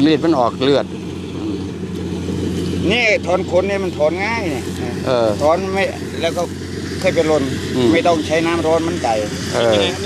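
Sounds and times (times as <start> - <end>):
engine droning: 0.0 - 10.0
man talking: 2.8 - 10.0.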